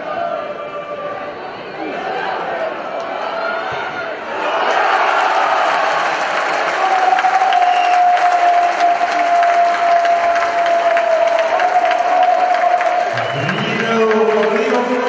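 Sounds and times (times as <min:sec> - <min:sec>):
crowd cheering and clapping: 0:04.3 - 0:15.0.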